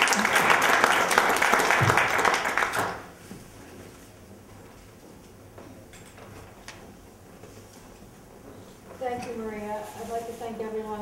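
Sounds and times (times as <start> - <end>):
audience applauding: 0.0 - 3.1.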